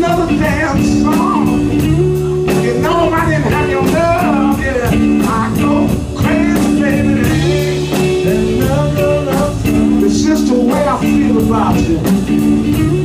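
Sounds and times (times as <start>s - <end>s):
blues band playing: 0.0s - 13.0s
drums keeping steady beat: 0.0s - 13.0s
man singing: 0.0s - 13.0s.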